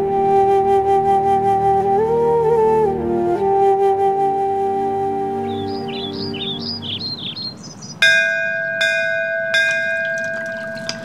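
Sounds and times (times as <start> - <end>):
temple bell ringing: 8.0 - 11.0.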